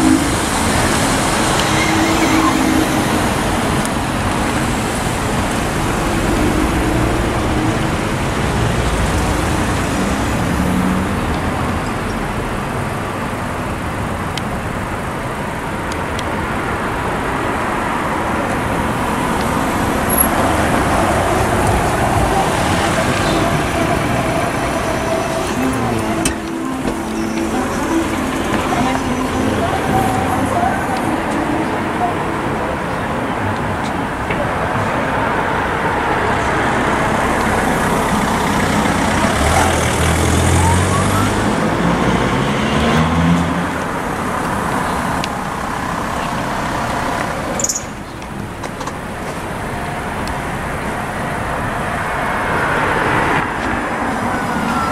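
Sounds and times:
traffic and rail rumble: 0:00.0 - 0:54.9
level crossing warning alarm: 0:19.3 - 0:33.3, 0:53.8 - 0:54.9
engine revving: 0:36.3 - 0:44.0.

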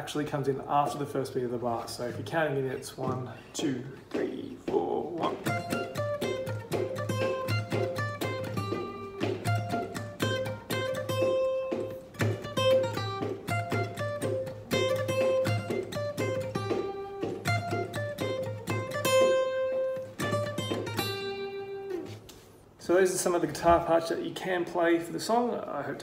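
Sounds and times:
acoustic guitar picked riff: 0:05.2 - 0:22.7.

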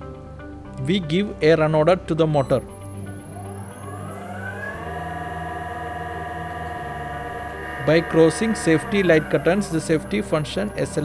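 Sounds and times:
electric motor whine rising: 0:02.6 - 0:11.0.

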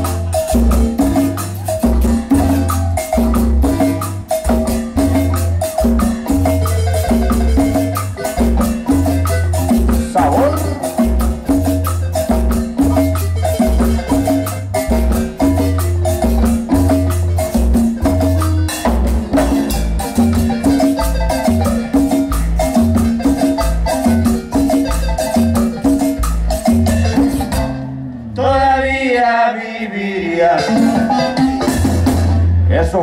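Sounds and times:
drum kit: 0:00.0 - 0:28.4, 0:30.6 - 0:33.0
marimba melody: 0:00.0 - 0:28.9, 0:30.3 - 0:32.6
congas: 0:00.0 - 0:33.0
electric bass: 0:00.0 - 0:33.0.

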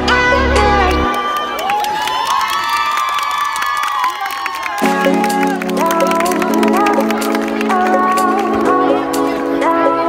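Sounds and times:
electronic music: 0:00.0 - 0:02.3, 0:04.7 - 0:10.0
people cheering: 0:01.0 - 0:08.9.

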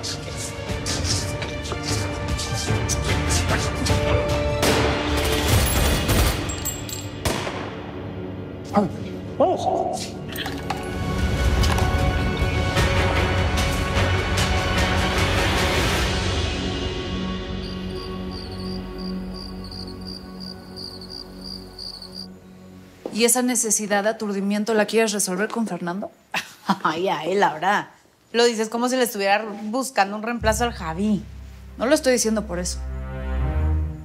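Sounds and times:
soft soundtrack music: 0:00.0 - 0:05.3, 0:30.4 - 0:34.0
dramatic music: 0:00.0 - 0:22.3, 0:30.4 - 0:34.0
crickets chirping: 0:16.7 - 0:29.4, 0:30.5 - 0:34.0.

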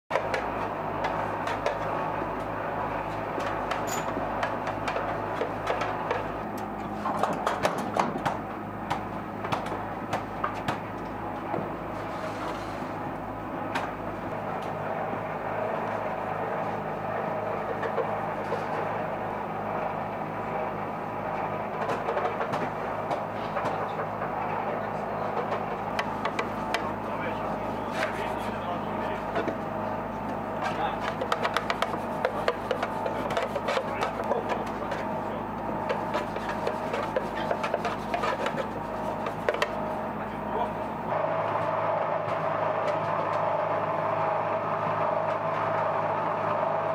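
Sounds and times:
machinery hum: 0:00.1 - 0:46.9.

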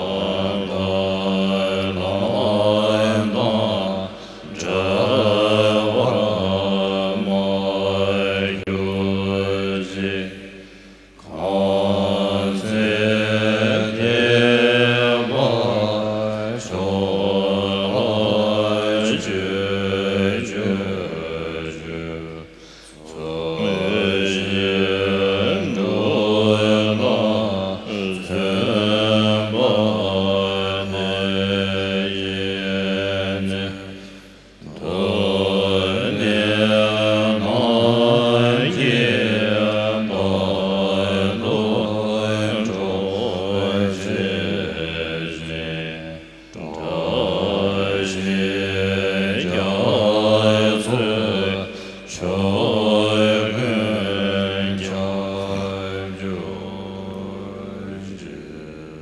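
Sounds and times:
slow melodic prayer chanting: 0:00.0 - 0:59.0.

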